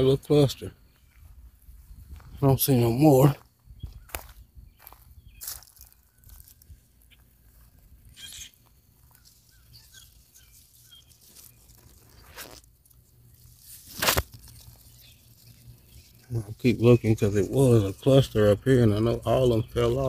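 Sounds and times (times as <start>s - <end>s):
leaves and twigs rustling: 4.0s - 18.2s.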